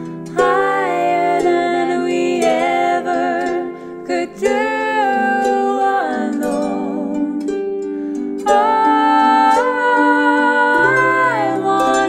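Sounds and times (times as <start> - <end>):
plucked harp: 0.0 - 12.0
woman singing with vibrato: 0.3 - 7.8, 8.4 - 12.0.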